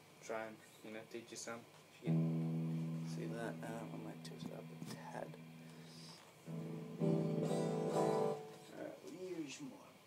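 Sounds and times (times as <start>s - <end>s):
electric guitar notes: 2.0s - 8.9s.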